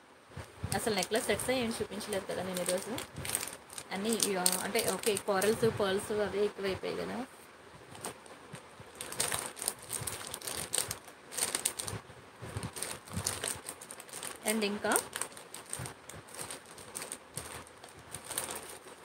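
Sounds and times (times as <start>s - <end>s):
plastic pouches crinkling: 0.7s - 5.7s, 7.9s - 19.0s.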